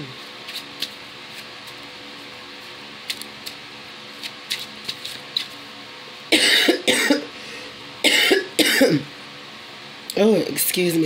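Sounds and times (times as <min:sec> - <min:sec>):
woman coughing harshly: 0:06.3 - 0:07.3, 0:08.0 - 0:09.1.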